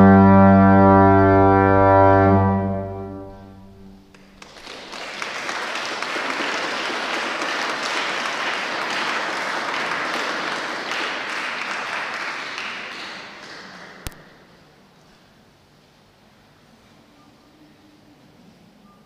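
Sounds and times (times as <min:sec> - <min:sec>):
pipe organ chord: 0:00.0 - 0:04.2
congregation applauding: 0:04.0 - 0:14.4.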